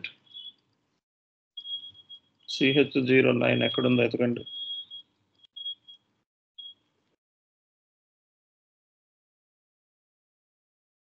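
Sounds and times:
high-pitched electronic whine: 1.6s - 5.0s.

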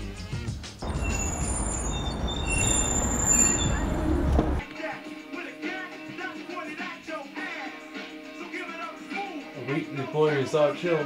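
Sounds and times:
street rumble: 0.0s - 4.6s
high squealing tones: 0.8s - 4.6s.

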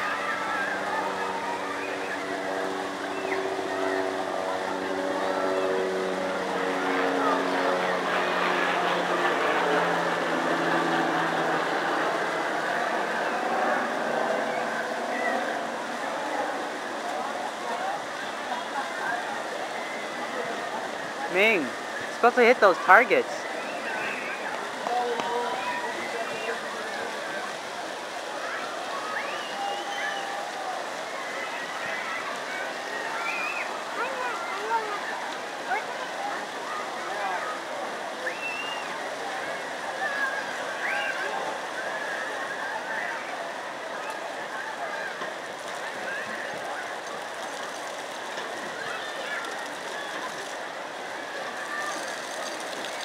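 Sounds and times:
distant voices: 0.0s - 53.0s
fountain jets splashing into water: 0.0s - 53.0s.

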